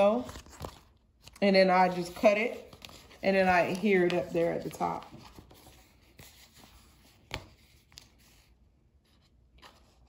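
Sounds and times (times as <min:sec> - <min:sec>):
contact paper rustling and scratching: 0:00.0 - 0:10.0.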